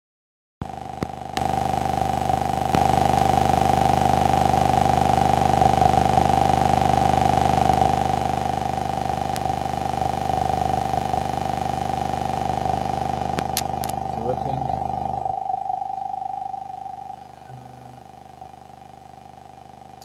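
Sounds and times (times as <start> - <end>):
hum and hiss: 1.0 - 20.0
steady electronic drone: 8.0 - 20.0
sharp clicks: 13.3 - 14.0.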